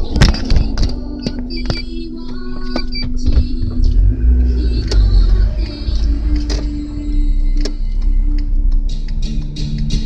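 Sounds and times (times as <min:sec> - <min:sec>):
car engine and road rumble: 0:00.0 - 0:10.0
sharp clicks and rattles: 0:00.0 - 0:10.0.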